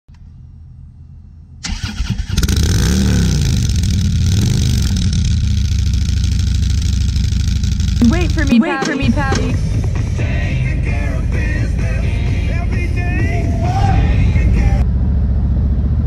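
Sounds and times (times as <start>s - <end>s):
motorcycle engine starting and revving: 1.6s - 16.0s.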